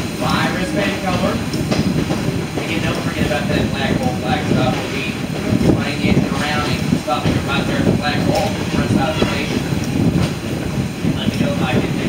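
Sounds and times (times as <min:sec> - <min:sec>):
voices: 0:00.0 - 0:10.2, 0:11.0 - 0:12.0
train wheels rumbling and rattling: 0:00.0 - 0:12.0.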